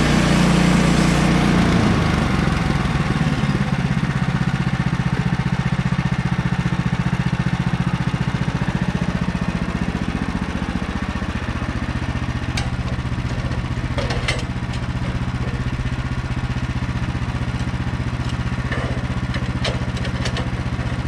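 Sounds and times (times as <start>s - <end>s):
sawmill engine idling: 0.0s - 21.0s.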